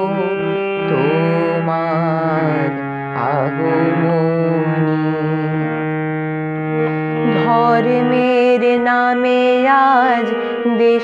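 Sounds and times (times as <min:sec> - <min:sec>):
harmonium chords: 0:00.0 - 0:11.0
man singing devotional song: 0:00.0 - 0:11.0.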